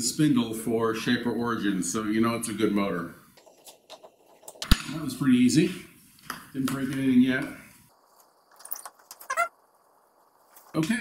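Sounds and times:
short squeak: 9.2s - 9.5s.

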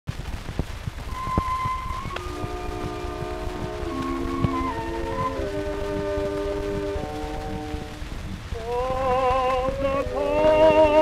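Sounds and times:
vinyl record crackle and rumble: 0.1s - 11.0s
orchestral accompaniment: 1.1s - 11.0s.

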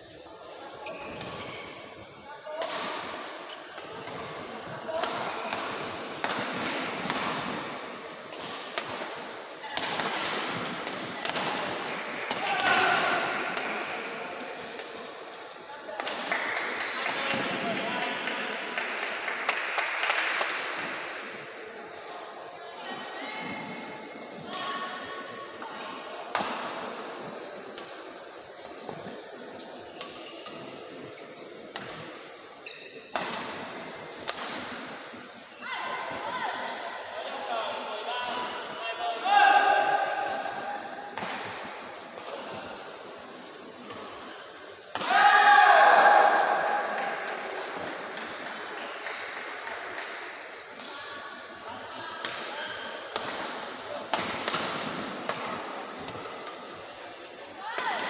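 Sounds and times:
shoe squeaks on court: 0.8s - 2.0s, 32.6s - 33.1s.

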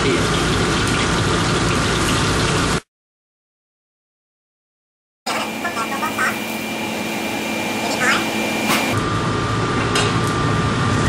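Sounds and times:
oil sizzling: 0.2s - 2.8s, 5.3s - 9.0s
gas burner low hum: 5.3s - 11.0s.

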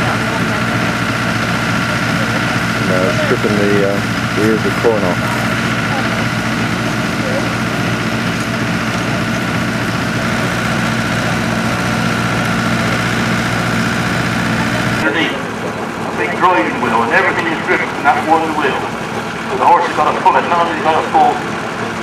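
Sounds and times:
mechanical whine: 0.0s - 22.0s
threshing machine running: 0.0s - 22.0s
voices outdoors: 0.0s - 22.0s.

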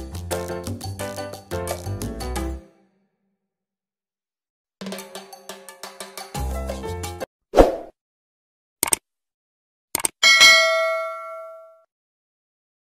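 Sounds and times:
background music: 0.0s - 3.0s, 4.8s - 7.3s
sharp double click: 10.0s - 10.2s
bell-like ding: 10.2s - 11.9s.

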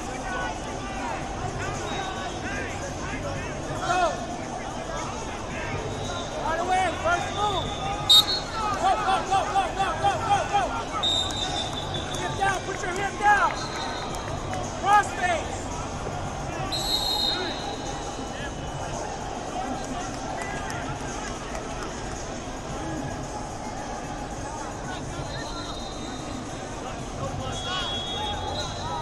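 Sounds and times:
crowd babble: 0.0s - 29.0s
referee whistle blowing: 1.8s - 2.4s, 5.8s - 6.4s, 7.2s - 9.0s, 10.8s - 12.4s, 13.5s - 14.2s, 16.7s - 18.3s, 25.2s - 26.5s, 27.4s - 29.0s
wrestlers shouting: 5.3s - 12.6s.

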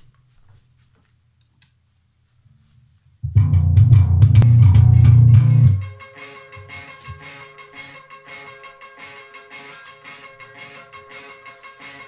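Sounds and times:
electric bass guitar notes: 3.2s - 12.0s.

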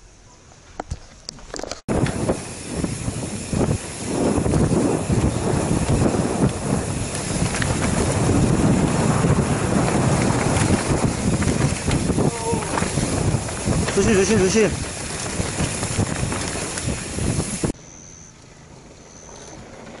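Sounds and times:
bike rattling over rough ground: 0.8s - 17.8s, 18.6s - 20.0s
wind buffeting microphone: 1.9s - 17.8s.

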